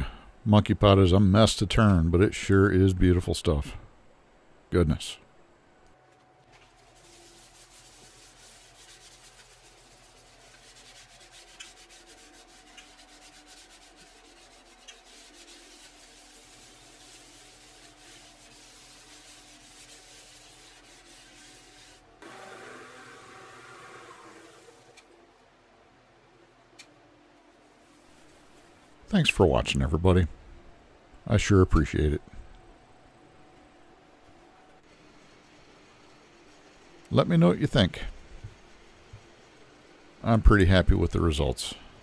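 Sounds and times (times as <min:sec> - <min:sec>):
hand rubbing wooden bowl: 0:06.5 - 0:22.1.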